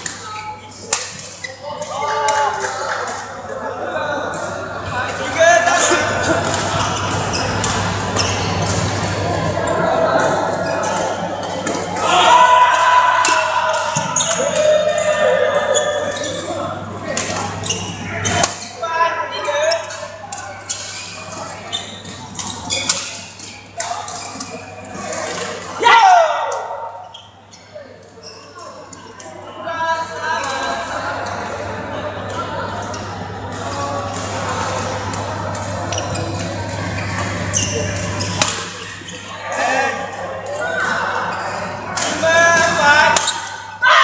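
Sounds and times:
voices: 0.0s - 44.0s.

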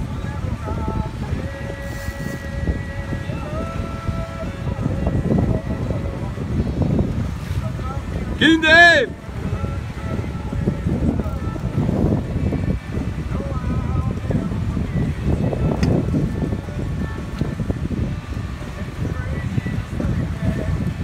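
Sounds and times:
faint music: 0.0s - 21.0s
wind buffeting microphone: 0.0s - 21.0s.

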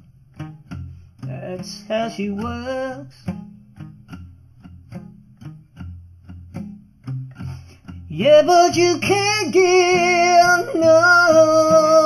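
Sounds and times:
plucked blues guitar: 0.0s - 12.0s.

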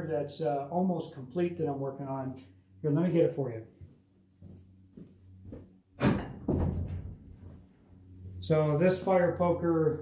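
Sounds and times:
faint shuffling: 3.1s - 5.7s.

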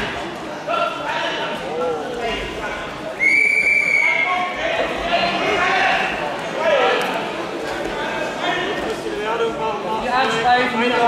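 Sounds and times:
referee's whistle: 3.2s - 4.3s.

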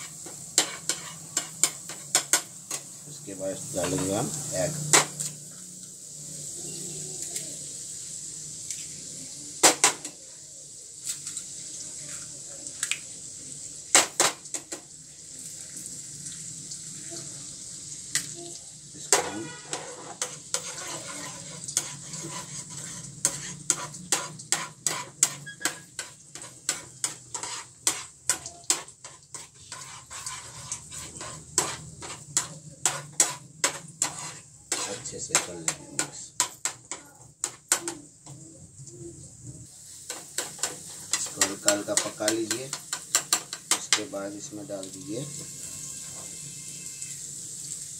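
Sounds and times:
garlic sizzling in a pan: 0.0s - 47.9s
eggs cracked against pan: 12.7s - 13.1s, 13.9s - 14.9s, 40.1s - 44.1s.

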